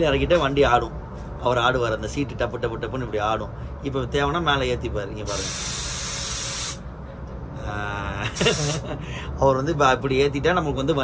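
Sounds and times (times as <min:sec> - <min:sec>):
bus engine rumble: 0:00.0 - 0:11.0
loud hiss: 0:05.3 - 0:06.8, 0:08.3 - 0:08.9.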